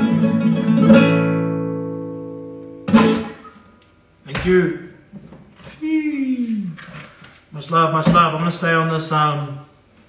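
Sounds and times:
classical guitar chords: 0:00.0 - 0:03.7.

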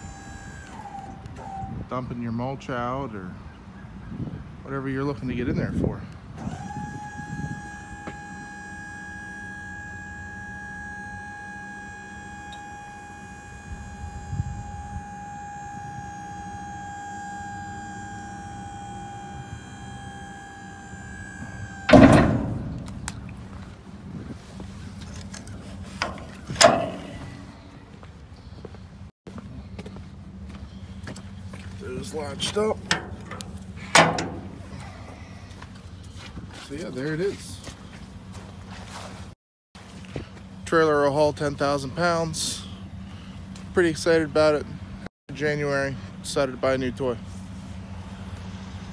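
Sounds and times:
hydraulic pump whining: 0:00.0 - 0:02.0, 0:06.3 - 0:28.1, 0:31.0 - 0:35.8
steady low hum: 0:05.6 - 0:48.9
loud metal clunk: 0:21.9 - 0:23.4, 0:26.0 - 0:27.5, 0:32.8 - 0:34.7.

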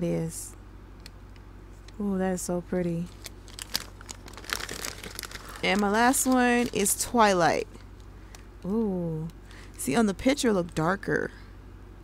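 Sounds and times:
plastic packaging crinkling: 0:03.0 - 0:08.1.

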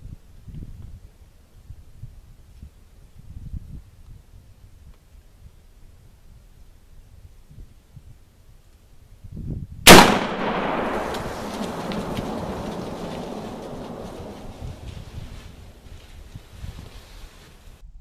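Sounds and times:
rifle shot: 0:09.9 - 0:14.6
gunshot echo: 0:09.9 - 0:14.9.

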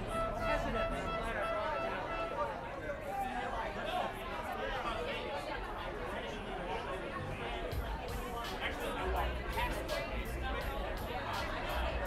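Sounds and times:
steady held instrument tone: 0:00.0 - 0:02.8
crowd chatter: 0:00.0 - 0:12.0.

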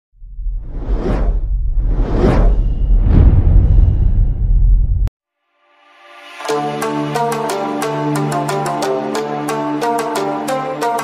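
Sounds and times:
deep rumble: 0:00.1 - 0:05.1
rushing whoosh: 0:00.5 - 0:05.1.

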